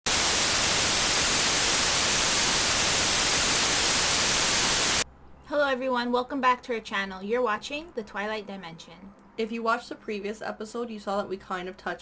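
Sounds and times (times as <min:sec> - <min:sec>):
tv static hiss: 0:00.0 - 0:05.0.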